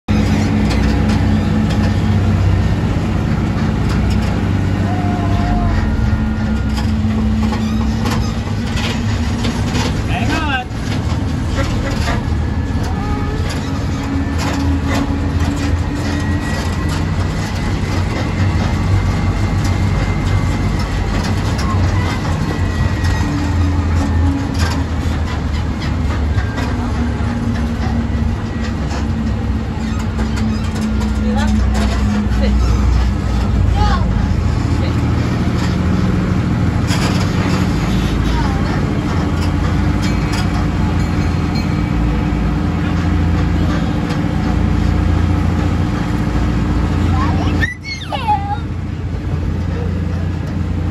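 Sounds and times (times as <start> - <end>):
small train engine rumbling: 0.0 - 50.9.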